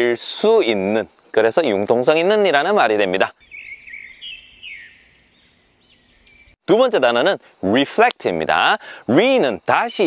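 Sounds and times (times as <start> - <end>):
small birds chirping: 3.3 - 6.6.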